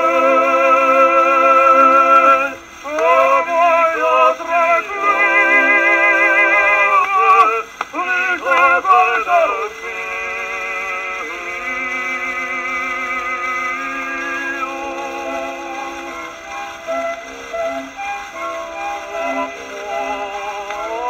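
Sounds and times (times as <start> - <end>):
opera duet on old record: 0.0 - 21.0
record surface hiss: 0.0 - 21.0.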